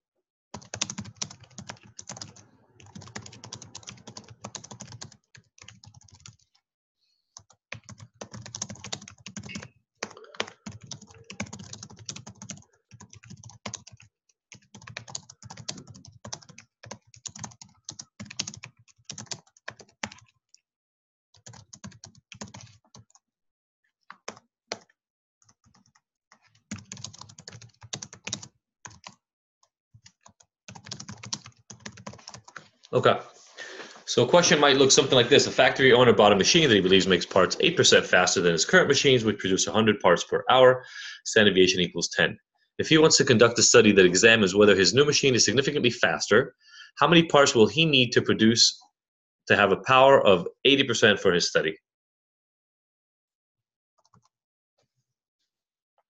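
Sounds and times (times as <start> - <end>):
typing on computer keyboard: 0.5 - 6.6, 7.4 - 20.6, 21.4 - 23.2, 24.1 - 29.2, 30.0 - 32.7, 54.0 - 54.3.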